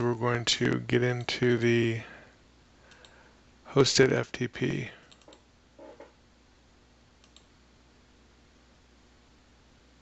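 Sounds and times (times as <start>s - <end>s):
computer mouse clicks: 2.9s - 3.2s, 5.1s - 6.2s, 7.2s - 7.5s.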